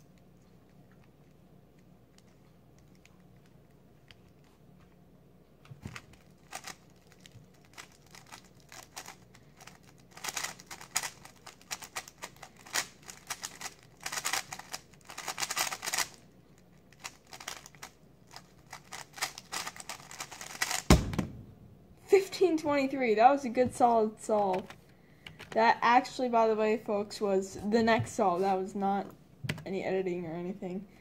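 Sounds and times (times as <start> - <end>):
plastic cube turning clatter: 5.9 - 16.2, 16.9 - 20.9.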